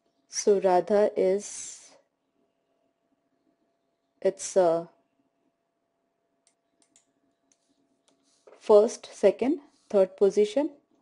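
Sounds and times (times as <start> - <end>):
faint short clicks: 6.4 - 8.2.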